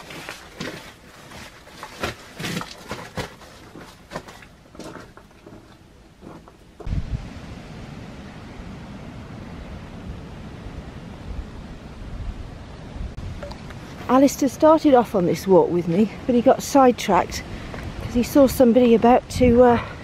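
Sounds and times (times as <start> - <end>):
wind buffeting microphone: 6.8 - 14.1, 15.0 - 20.0.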